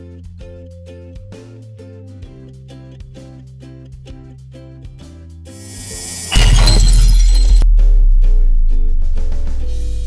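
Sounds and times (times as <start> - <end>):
loud crash: 5.6 - 7.6.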